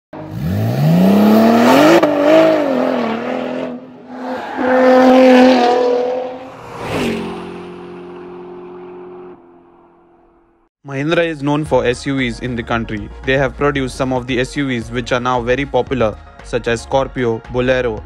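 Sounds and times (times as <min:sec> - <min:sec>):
sports car engine revving: 0:00.2 - 0:04.2.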